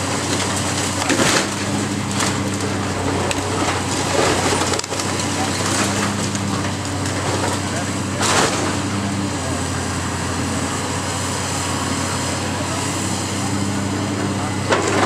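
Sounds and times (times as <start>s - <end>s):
masonry crashing: 0.0s - 10.4s
excavator diesel engine running: 0.0s - 15.0s.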